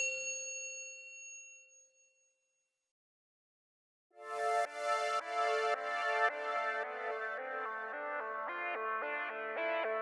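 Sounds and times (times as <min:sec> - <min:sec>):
metallic bell ding: 0:00.0 - 0:02.3.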